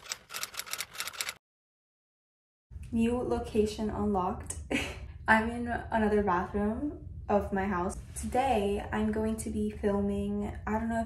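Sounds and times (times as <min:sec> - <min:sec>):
typewriter key clicks: 0:00.0 - 0:01.4.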